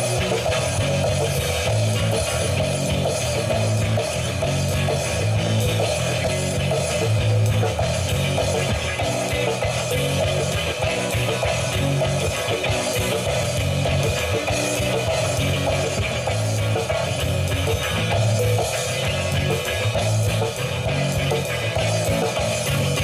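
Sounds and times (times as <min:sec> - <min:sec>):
drum kit: 0:00.0 - 0:23.0
electric guitars: 0:00.0 - 0:23.0.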